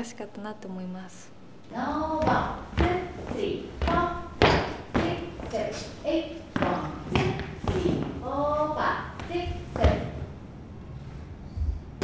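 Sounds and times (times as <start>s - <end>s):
voices: 0.0s - 10.2s
feet thumping on wooden floor: 2.2s - 5.7s, 6.5s - 8.2s.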